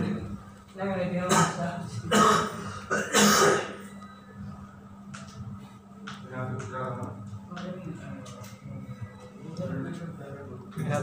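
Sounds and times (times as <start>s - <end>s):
person coughing: 1.3s - 3.8s.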